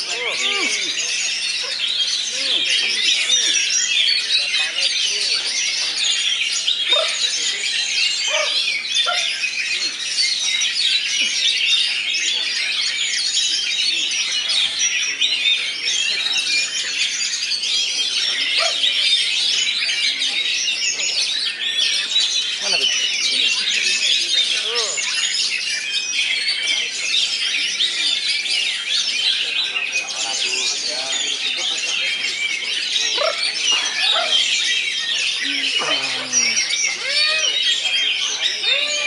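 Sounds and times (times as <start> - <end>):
songbirds chorus of whistles and chirps: 0.0 - 39.0.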